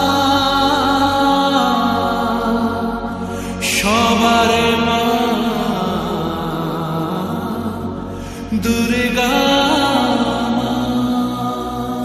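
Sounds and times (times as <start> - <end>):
steady drone: 0.0 - 12.0.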